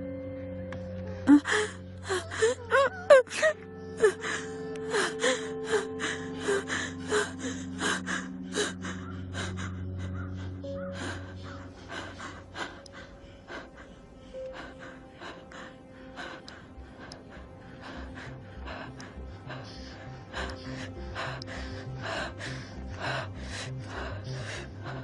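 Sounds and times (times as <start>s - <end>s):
low music drone: 0.0s - 25.0s
person gasping and sobbing: 1.1s - 25.0s.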